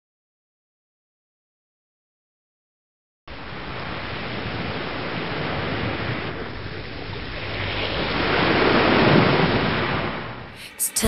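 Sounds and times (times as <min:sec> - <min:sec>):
ocean surf on beach: 0:03.3 - 0:11.0.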